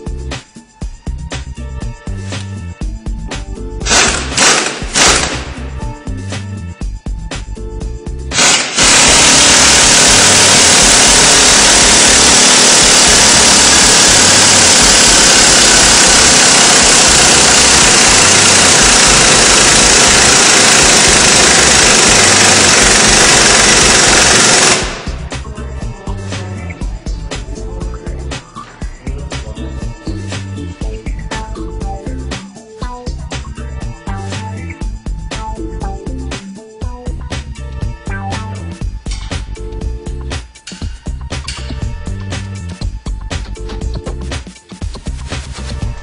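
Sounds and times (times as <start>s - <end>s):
power tool running: 3.8s - 5.7s, 8.3s - 25.3s.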